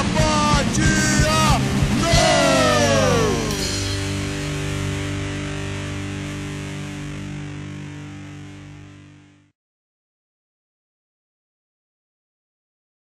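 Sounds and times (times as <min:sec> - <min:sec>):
distorted electric guitar chord: 0:00.0 - 0:09.5.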